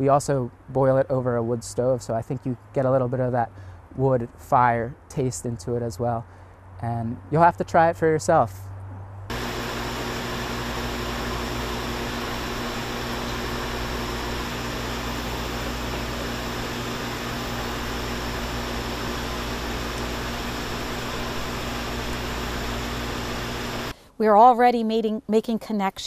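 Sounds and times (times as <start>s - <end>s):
low electrical hum: 9.2s - 24.0s.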